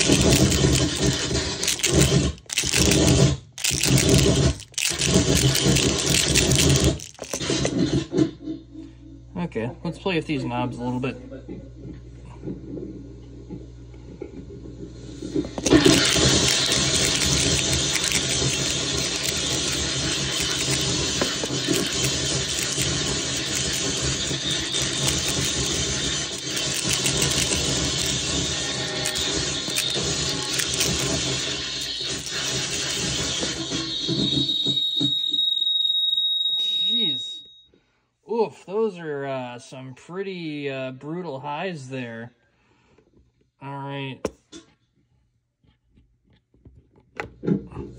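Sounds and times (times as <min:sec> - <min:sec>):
harsh fuzz pedal noise: 0:15.6 - 0:34.4.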